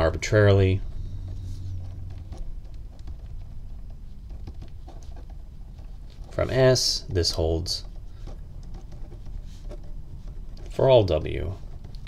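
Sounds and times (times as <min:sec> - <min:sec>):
steady low hum: 0:00.0 - 0:12.0
pen scratching on paper: 0:00.8 - 0:12.0.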